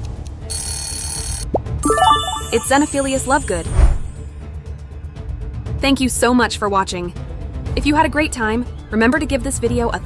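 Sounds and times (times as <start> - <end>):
background music: 1.6 - 8.6
high bell-like ringing: 1.8 - 4.2.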